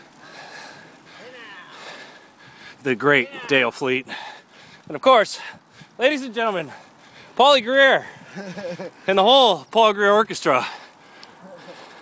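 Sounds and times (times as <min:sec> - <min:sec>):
bicycle rolling: 0:00.0 - 0:12.0.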